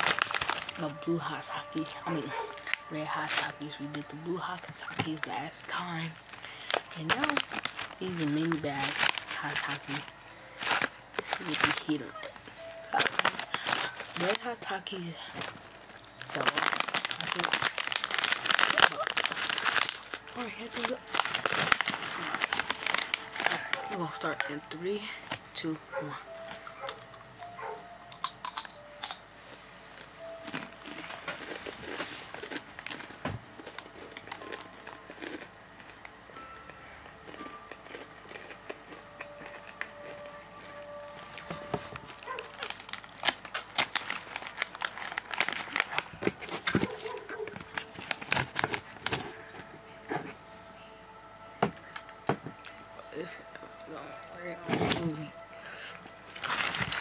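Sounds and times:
chips crunching while chewed: 0.0 - 12.0, 12.9 - 25.4, 28.1 - 49.7, 55.8 - 57.0
chip bag crinkling: 0.0 - 25.5, 28.1 - 36.6, 37.2 - 49.7, 54.6 - 57.0.

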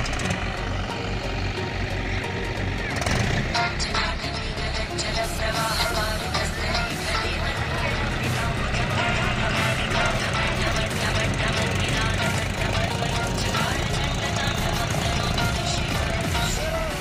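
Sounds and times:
background music: 0.0 - 17.0
diesel tractor engine running: 0.0 - 17.0
voices: 0.0 - 17.0.

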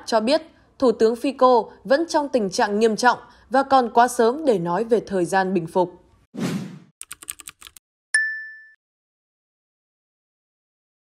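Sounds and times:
keyboard clicks: 7.0 - 7.8
bright ding: 8.2 - 8.8.

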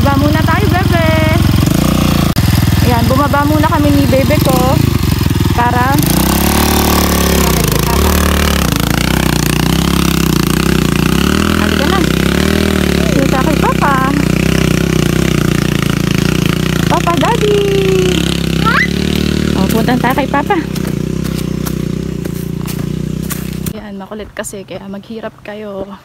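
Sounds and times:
dirt bike engine revving: 0.0 - 23.8.

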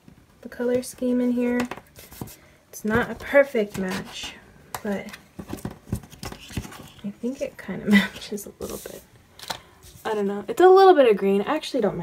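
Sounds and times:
rustles of tape and paper: 8.2 - 10.4.

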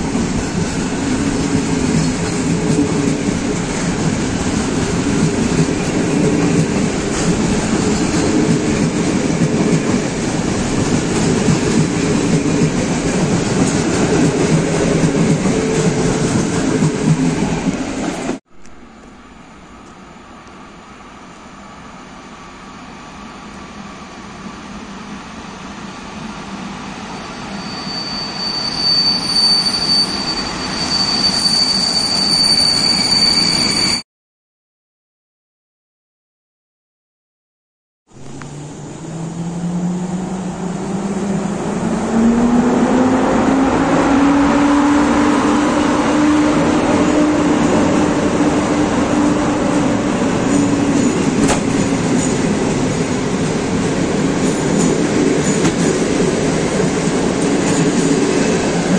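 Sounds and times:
train wheels rumbling on rails: 0.0 - 20.6, 38.2 - 58.9
electric locomotive approaching: 0.0 - 34.0, 38.2 - 58.9
wheels and brakes squealing: 27.0 - 34.0.

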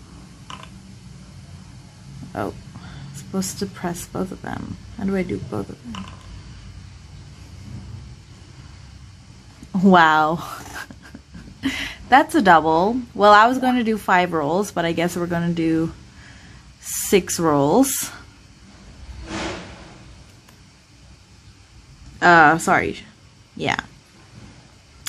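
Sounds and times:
low room noise rumble: 0.0 - 25.0.

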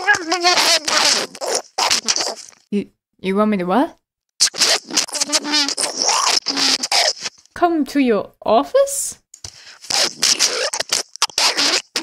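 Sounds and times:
garbled voice over phone: 0.0 - 2.6, 4.4 - 7.4, 9.9 - 12.0
person speaking: 0.0 - 2.9, 4.5 - 8.0.

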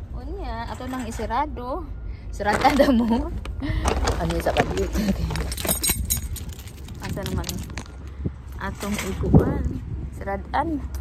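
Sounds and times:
shopping bags crinkling: 2.5 - 7.9
low microphone handling rumble: 3.0 - 11.0
light clinking and rattling: 3.8 - 9.3.

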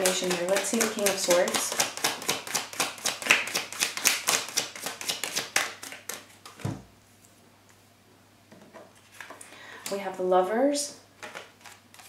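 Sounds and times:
cards being shuffled: 0.0 - 6.7, 11.2 - 12.0.

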